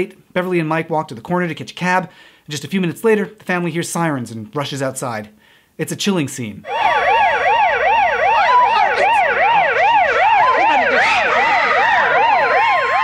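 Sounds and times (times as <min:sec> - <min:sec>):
siren sweeping up and down: 0:06.6 - 0:13.0
steady siren tone: 0:06.6 - 0:13.0.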